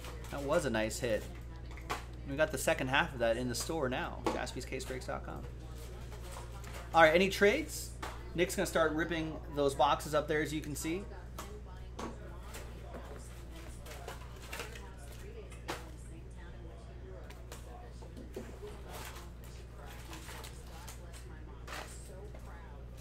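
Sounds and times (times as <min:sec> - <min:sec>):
foil card packs crinkling: 0:18.6 - 0:22.1.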